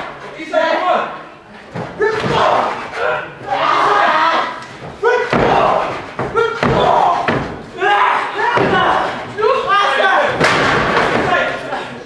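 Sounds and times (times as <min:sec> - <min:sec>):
people shouting: 0:02.0 - 0:11.7.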